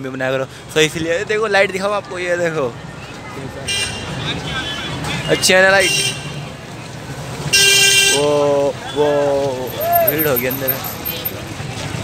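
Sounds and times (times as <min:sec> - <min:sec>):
traffic hum: 0:00.0 - 0:12.0
car horns tooting: 0:03.7 - 0:06.4, 0:07.5 - 0:11.4.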